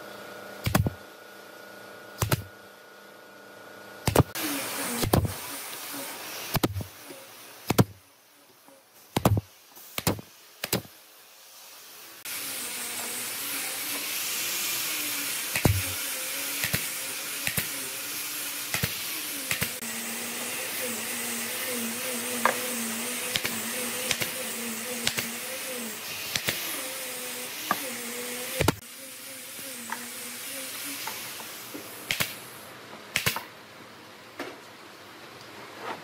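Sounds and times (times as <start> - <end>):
compressor motor humming: 12.3 - 32.6
nail gun firing: 32.1 - 32.4, 33.1 - 33.5.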